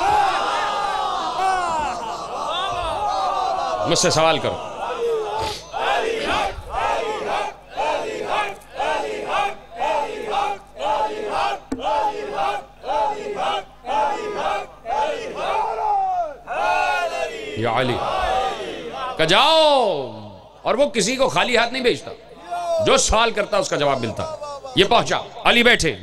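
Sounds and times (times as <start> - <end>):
crowd of men chanting: 0.0 - 19.5.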